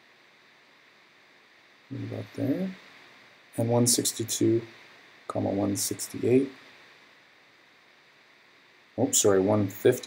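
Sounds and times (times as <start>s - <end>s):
microphone hiss: 0.0s - 10.0s
man speaking: 1.9s - 2.8s, 3.6s - 4.7s, 5.3s - 6.6s, 9.0s - 10.0s.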